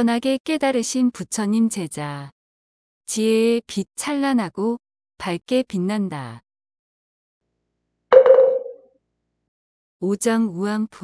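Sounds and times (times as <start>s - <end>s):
struck ringing note: 8.1s - 8.8s.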